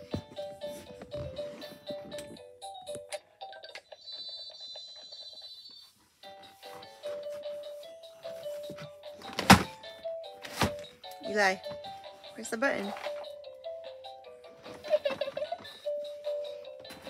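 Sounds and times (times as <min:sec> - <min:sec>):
toy beeping tune: 0:03.4 - 0:06.0.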